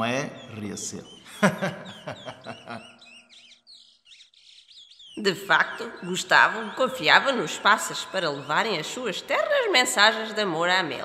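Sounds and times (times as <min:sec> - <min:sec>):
person speaking: 0:00.0 - 0:02.8, 0:05.2 - 0:11.0
small birds chirping: 0:00.0 - 0:11.0.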